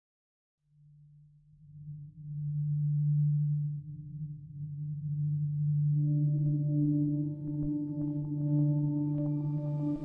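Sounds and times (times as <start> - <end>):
low steady drone tone: 1.6 - 10.0.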